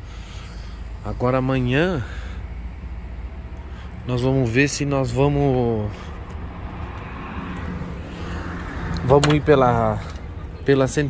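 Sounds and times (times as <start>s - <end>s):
diesel truck engines idling: 0.0s - 11.0s.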